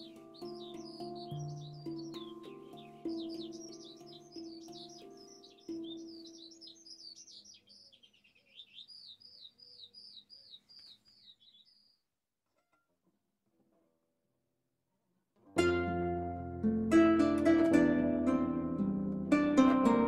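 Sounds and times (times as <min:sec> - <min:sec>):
handpan notes ringing: 0:00.0 - 0:06.8, 0:15.6 - 0:20.0
songbird chirping: 0:00.0 - 0:12.2.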